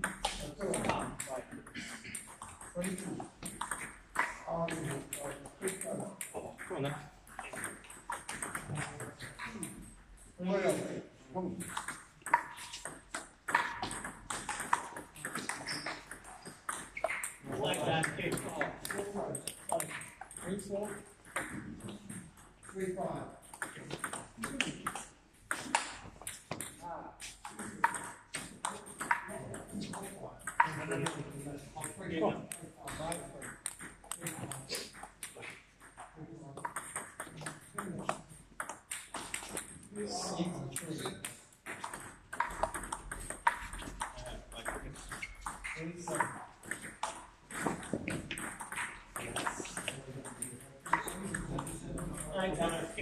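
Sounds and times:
voices in a hall: 0.0s - 53.0s
people talking: 0.2s - 2.0s, 2.7s - 3.3s, 4.4s - 7.6s, 8.5s - 9.8s, 10.4s - 11.7s, 17.4s - 25.0s, 26.8s - 33.5s, 34.1s - 35.5s, 37.4s - 38.2s, 39.8s - 41.3s, 43.8s - 45.1s, 45.7s - 46.4s, 49.2s - 53.0s
table tennis ball clicking: 7.3s - 9.8s, 11.6s - 17.4s, 31.8s - 39.9s, 41.0s - 52.9s.

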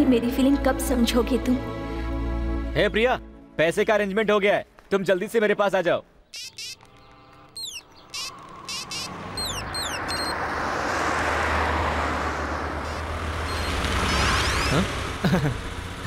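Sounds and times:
birds chirping: 3.7s - 10.6s, 12.8s - 15.4s
van driving past: 8.0s - 16.0s.

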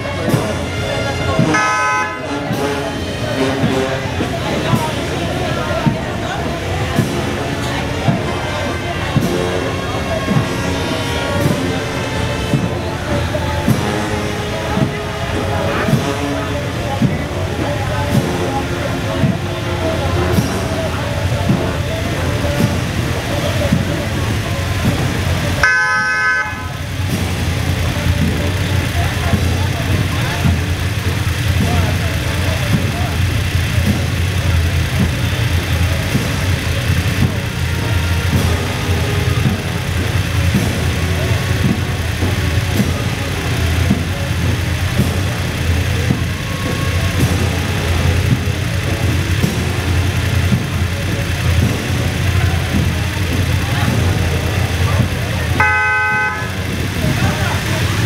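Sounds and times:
horn honk: 0.0s - 5.8s, 7.0s - 17.4s, 24.2s - 29.4s, 54.8s - 57.2s
motorcycle engines rumbling: 0.0s - 58.0s.

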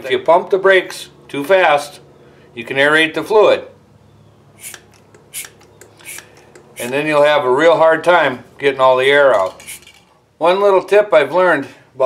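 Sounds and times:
hand pump rasping strokes: 4.6s - 7.2s, 9.5s - 10.1s.

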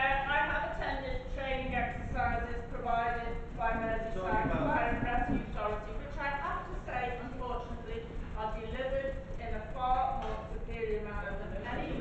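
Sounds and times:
person speaking over public address: 0.0s - 12.0s
low rumble: 0.9s - 5.9s.

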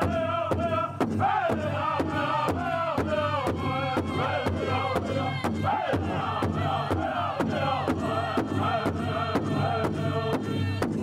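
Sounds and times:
men singing vocables: 0.0s - 11.0s
powwow drum beats: 0.0s - 11.0s.

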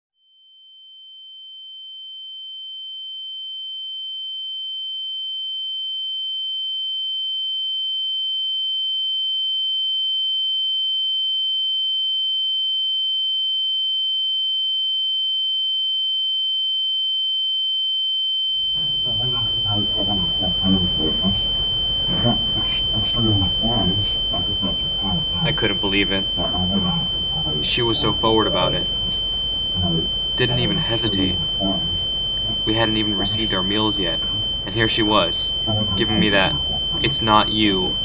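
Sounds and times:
high electronic tone: 18.7s - 38.0s
murmur of voices: 32.5s - 38.0s.

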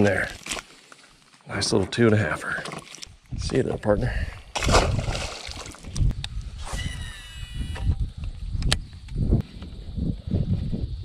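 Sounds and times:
fish splashing into water: 4.5s - 5.9s.

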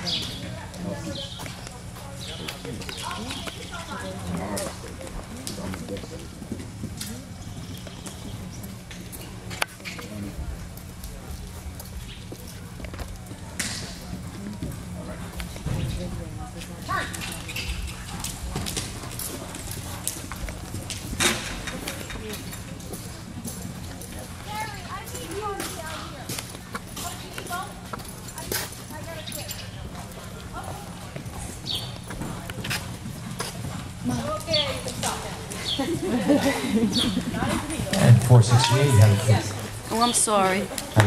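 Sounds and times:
pony hoofbeats cantering: 0.1s - 41.0s.

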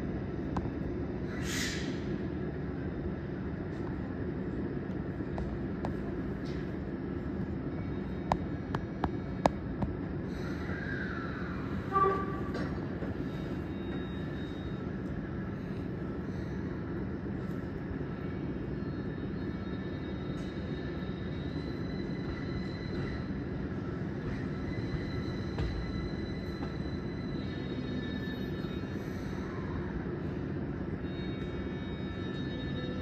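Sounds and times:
electric train rumbling: 0.0s - 33.0s.

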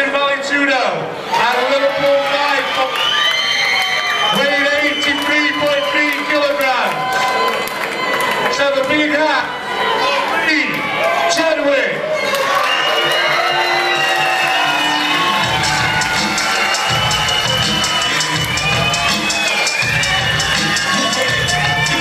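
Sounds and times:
crowd cheering and whooping: 1.2s - 22.0s
music with heavy beat over pa: 13.6s - 22.0s.

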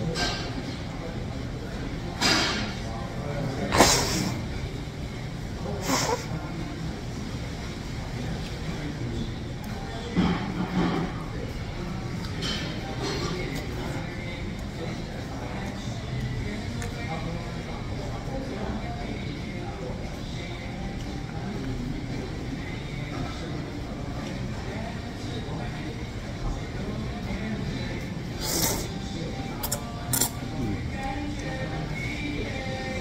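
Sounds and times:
background chatter: 0.0s - 33.0s
man blowing nose: 28.4s - 28.9s.

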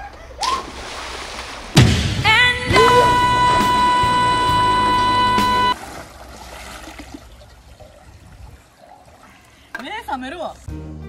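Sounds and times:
pool water sloshing and lapping: 0.4s - 1.8s, 4.8s - 10.6s.

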